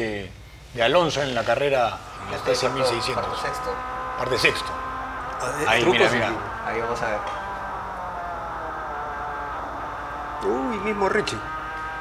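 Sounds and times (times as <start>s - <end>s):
racing car engine from inside: 1.9s - 12.0s.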